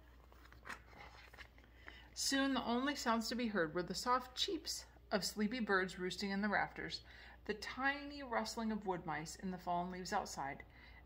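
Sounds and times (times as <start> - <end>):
paper page turning: 0.0 - 2.0.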